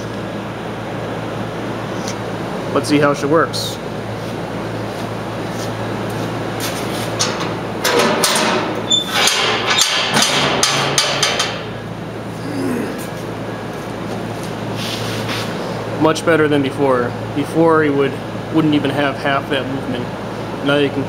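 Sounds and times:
steady low hum: 0.0 - 21.0
metal clanks and scraping: 6.6 - 11.8.

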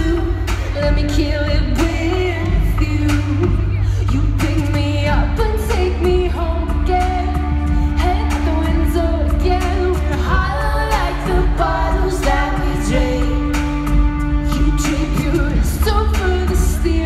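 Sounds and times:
synth bass: 0.0 - 17.0
woman singing: 0.0 - 17.0.

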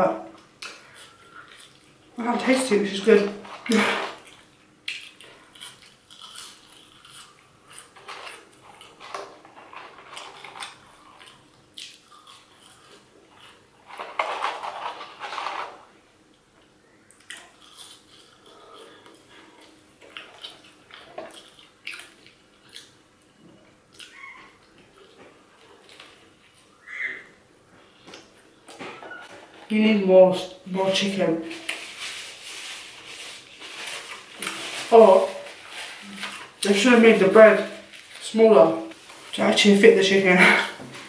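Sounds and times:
chewing fries: 0.3 - 2.2, 3.4 - 26.8.

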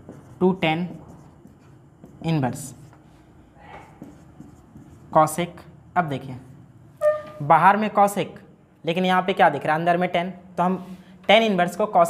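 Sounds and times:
marker scratching on whiteboard: 0.0 - 3.0, 3.6 - 5.6.

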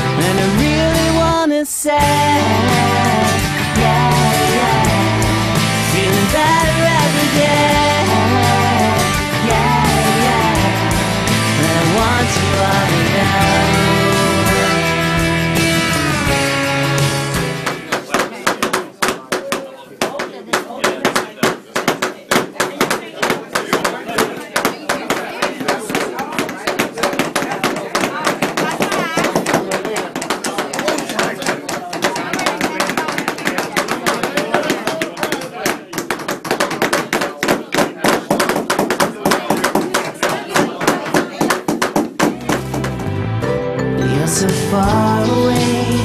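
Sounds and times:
many people talking: 0.0 - 46.0
hammers tapping nails into wood: 17.6 - 43.0.

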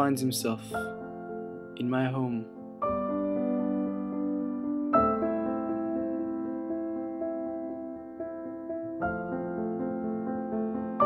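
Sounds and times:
slow solo piano chords: 0.0 - 11.0.

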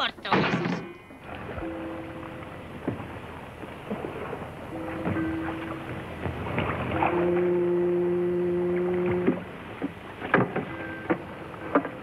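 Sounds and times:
ship's horn low blast: 1.0 - 12.0.

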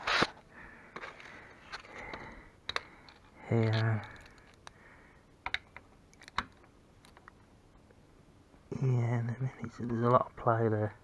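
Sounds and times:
handling noises with light clicks: 0.2 - 4.8, 5.4 - 8.0, 9.6 - 10.5.

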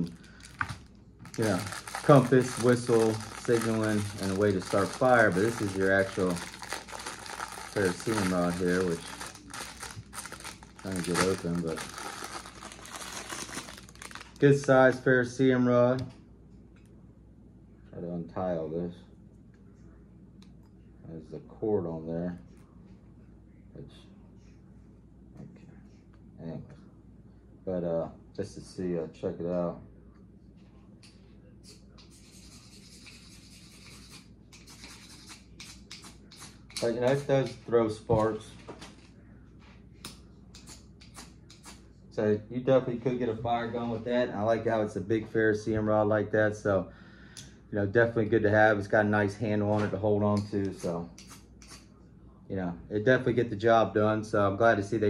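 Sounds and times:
rubbing handling noise: 0.0 - 14.9
plastic packaging crinkling: 0.0 - 15.0.

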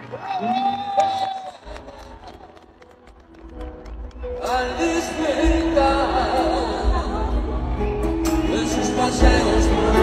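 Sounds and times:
low musical backing: 3.2 - 10.0
man singing into a microphone: 4.4 - 7.4, 8.3 - 10.0.

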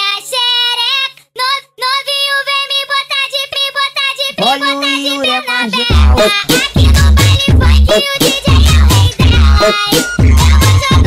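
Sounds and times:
high-pitched singing voice: 0.0 - 11.0.

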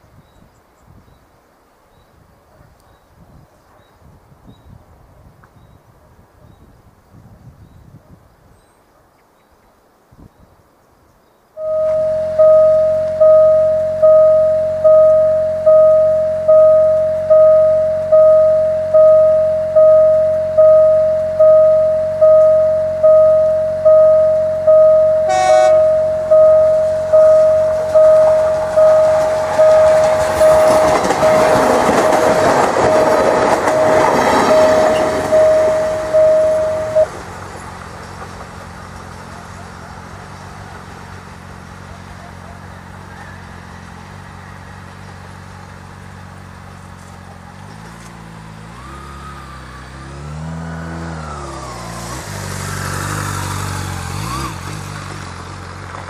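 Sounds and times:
train horn toot: 11.6 - 37.1
railway warning bell ringing: 11.6 - 37.8
low steady rumble: 11.6 - 38.0
passing train rush: 11.6 - 55.9.

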